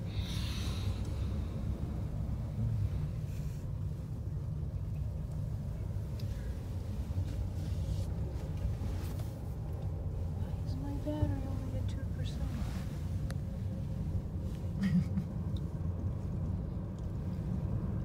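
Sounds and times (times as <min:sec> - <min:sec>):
gondola cabin rumble: 0:00.0 - 0:18.0.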